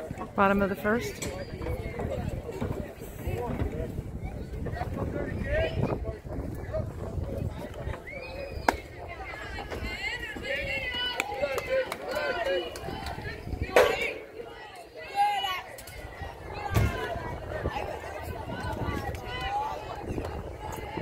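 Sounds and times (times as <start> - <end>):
children shouting and chattering: 0.0 - 21.0.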